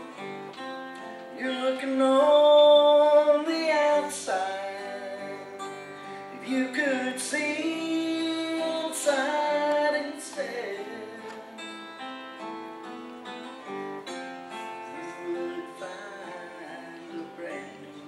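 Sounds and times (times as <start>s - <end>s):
acoustic guitar strummed and picked: 0.0s - 18.0s
man singing: 1.3s - 12.0s, 14.6s - 18.0s.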